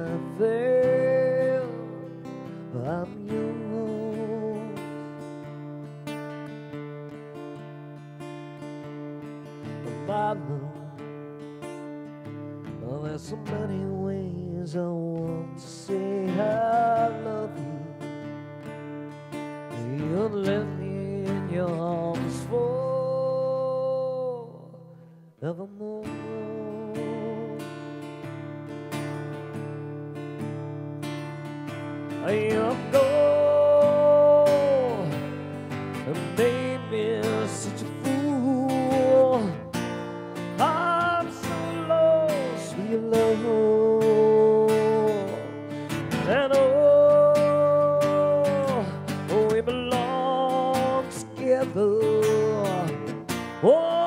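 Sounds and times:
man singing: 0.0s - 6.1s, 9.3s - 11.7s, 12.3s - 28.4s, 31.2s - 54.0s
strummed acoustic guitar: 0.0s - 54.0s.

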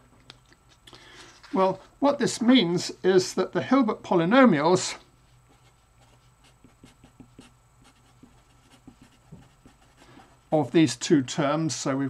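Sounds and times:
marker scratching on paper: 5.4s - 10.8s.

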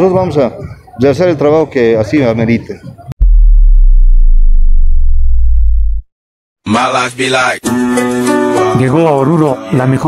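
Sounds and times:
deep synthesizer bass tone: 3.2s - 6.1s.

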